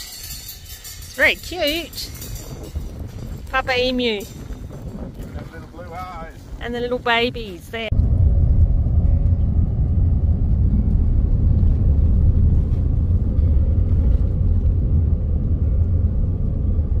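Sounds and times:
truck engine and tyre rumble: 0.0 - 17.0.

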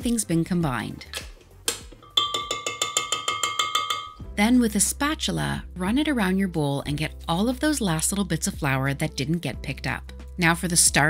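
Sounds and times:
whisk tapping glass bowl: 2.0 - 4.2.

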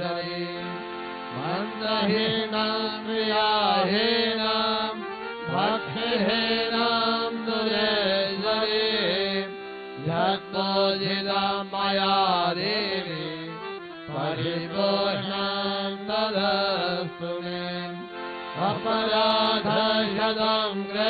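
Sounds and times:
harmonium drone: 0.0 - 21.0
person singing a hymn: 0.0 - 21.0.

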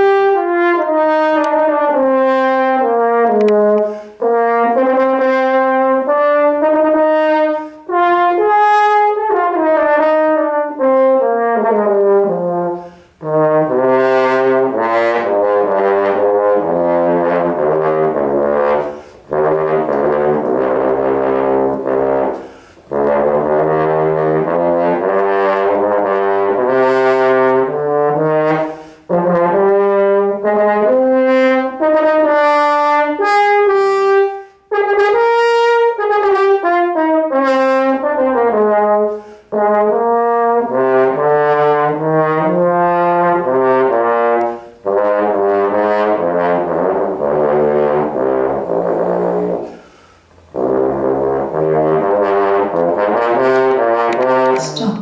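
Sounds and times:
french horn playing: 0.0 - 55.0.

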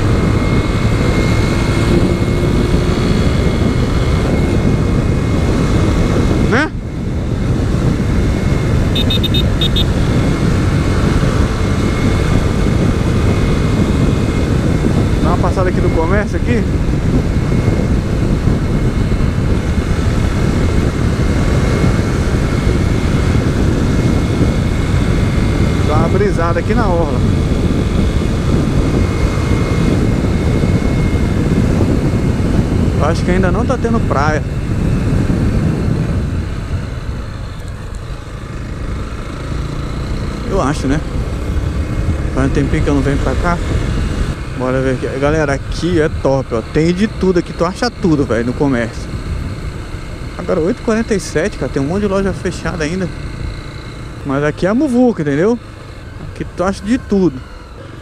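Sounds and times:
motorcycle engine running: 0.0 - 58.0
road noise: 0.0 - 58.0
wind rushing on microphone: 0.0 - 58.0.

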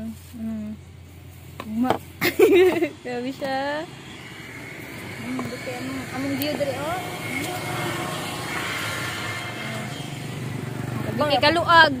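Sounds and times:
small motorcycle passing: 0.0 - 12.0.

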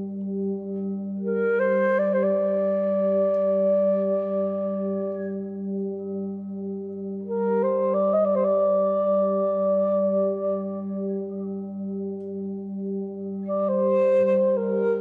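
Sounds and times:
flute playing long notes: 0.0 - 15.0.

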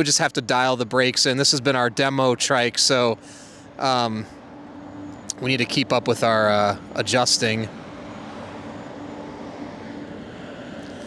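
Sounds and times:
electric hub motor humming: 3.8 - 11.0.

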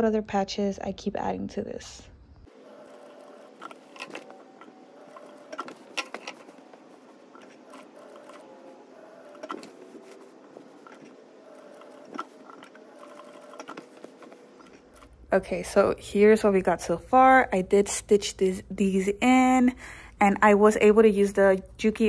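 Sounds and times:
sewing machine running: 2.5 - 15.1.

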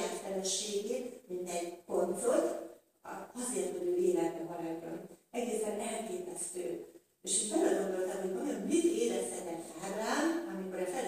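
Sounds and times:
woman preaching: 0.0 - 6.7, 7.3 - 11.0.

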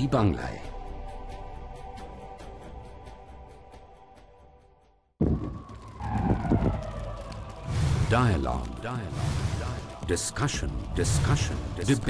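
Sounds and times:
deep rumble: 5.2 - 11.8
downward sliding tone: 5.9 - 8.2.

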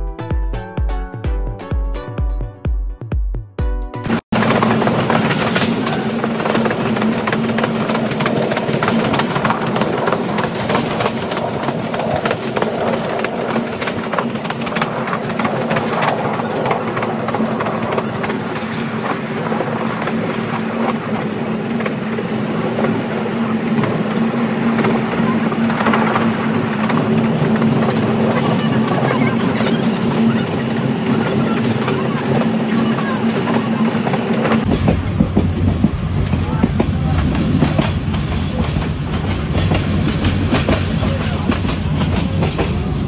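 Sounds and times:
train rumble from inside carriage: 4.1 - 43.0.

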